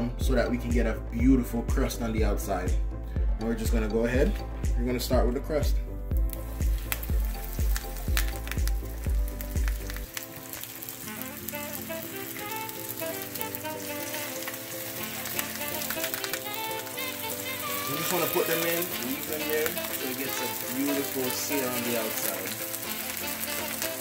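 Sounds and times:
background music: 0.0s - 24.0s
meat sizzling in oil: 6.1s - 24.0s.

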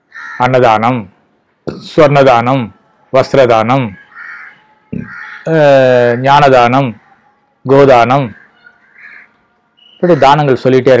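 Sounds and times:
crow cawing: 0.0s - 0.6s, 4.0s - 7.3s, 8.2s - 10.6s.

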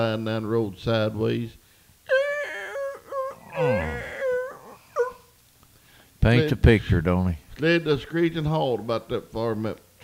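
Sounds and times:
man imitating tyres squealing: 2.1s - 5.2s.

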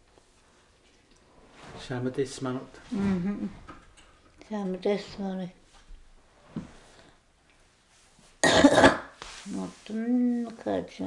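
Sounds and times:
person coughing: 8.4s - 9.1s.

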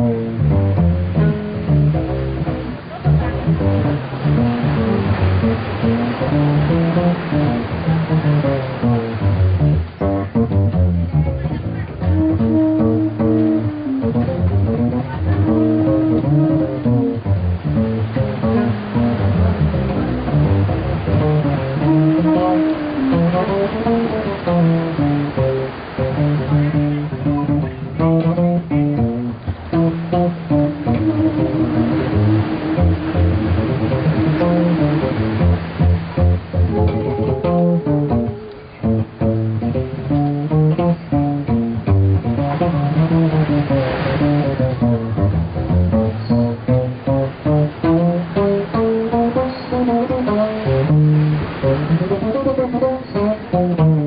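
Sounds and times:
plucked double bass: 0.0s - 54.0s.

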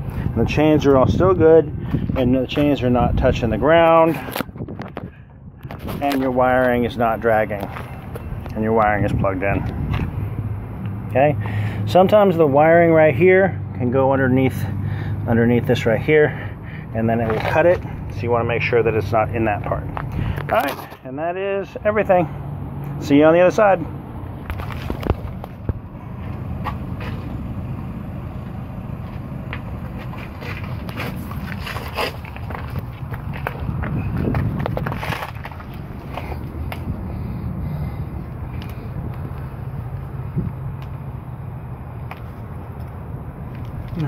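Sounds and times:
person crawling on pavement: 3.6s - 10.3s, 15.8s - 21.1s, 24.4s - 41.1s, 41.9s - 44.0s.

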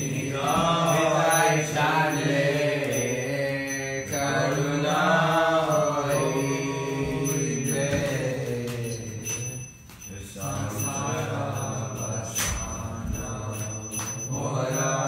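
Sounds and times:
person chanting: 0.0s - 9.5s.

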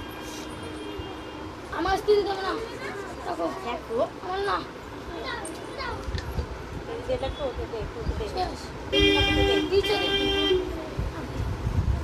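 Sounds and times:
vehicle horn honking: 8.9s - 10.7s.

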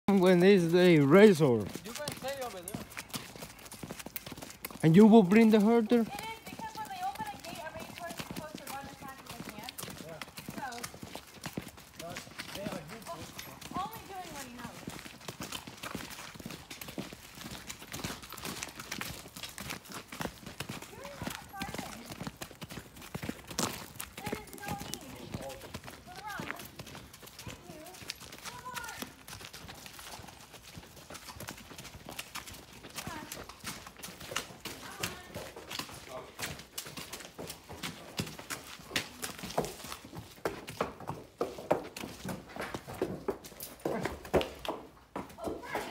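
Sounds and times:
hooves clopping on pavement: 0.1s - 45.9s.

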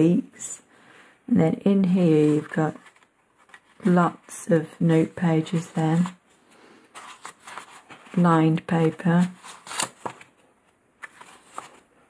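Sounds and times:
paper pages rustling: 1.9s - 4.3s, 4.9s - 12.0s.

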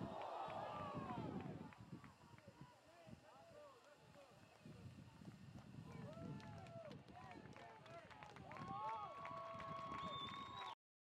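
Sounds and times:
open-air field noise: 0.0s - 10.8s.

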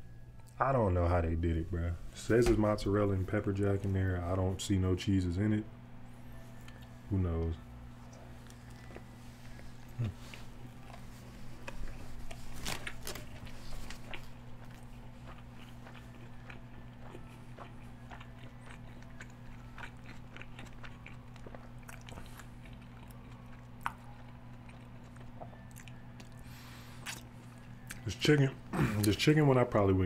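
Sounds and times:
steady low hum: 0.0s - 30.0s
person chewing crunchy food: 8.0s - 28.1s.

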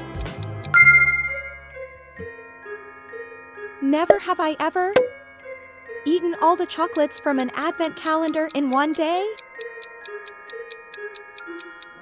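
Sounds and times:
soft background music: 0.2s - 12.0s
clock ticking: 7.2s - 9.4s.

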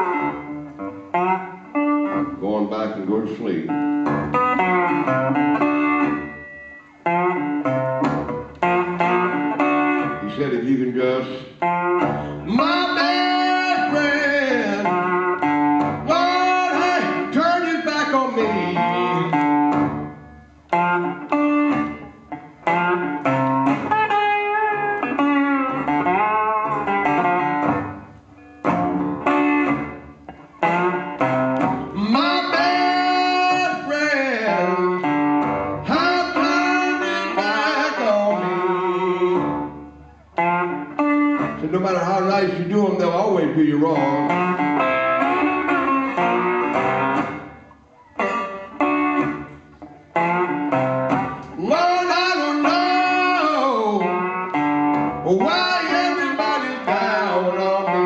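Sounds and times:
slide guitar blues: 0.0s - 58.0s.

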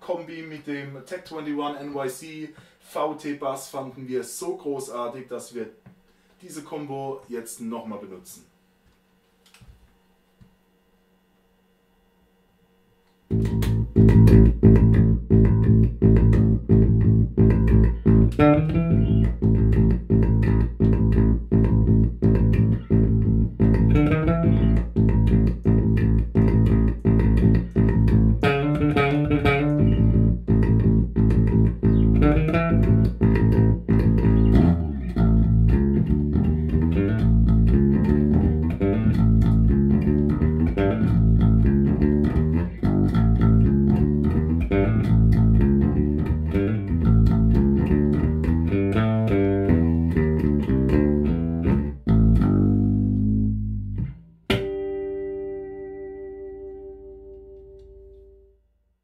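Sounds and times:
electric bass plucked notes: 13.3s - 58.5s.

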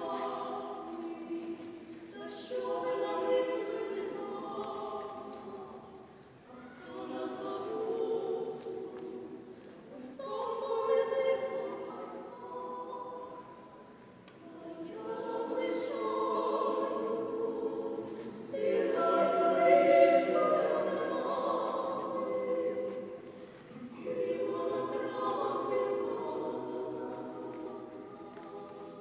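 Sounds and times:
small choir singing a cappella: 0.0s - 29.0s.

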